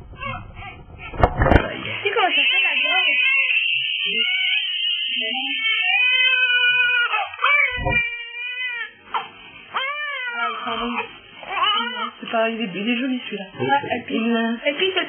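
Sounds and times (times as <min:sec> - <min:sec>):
newborn baby crying: 0:00.2 - 0:00.7, 0:02.2 - 0:12.2.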